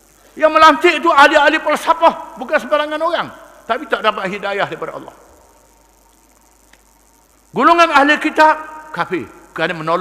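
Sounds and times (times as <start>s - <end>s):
faint high-pitched background noise: 0.0s - 10.0s
man speaking: 0.4s - 5.2s, 7.5s - 10.0s.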